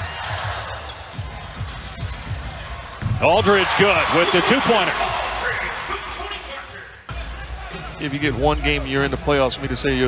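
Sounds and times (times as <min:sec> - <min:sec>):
basketball court noise: 0:00.0 - 0:06.4.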